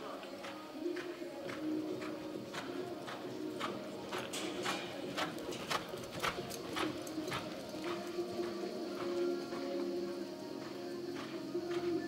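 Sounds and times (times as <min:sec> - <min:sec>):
horse hoofbeats on sand: 0:00.0 - 0:12.0.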